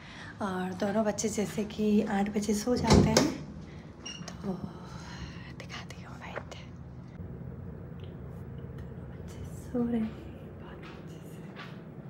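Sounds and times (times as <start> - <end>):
steady low hum: 0.0 - 12.0
woman whispering: 4.4 - 6.7, 8.8 - 11.8.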